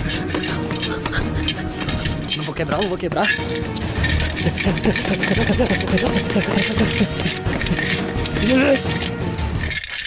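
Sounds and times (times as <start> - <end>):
person making wordless sounds: 8.3 - 9.1.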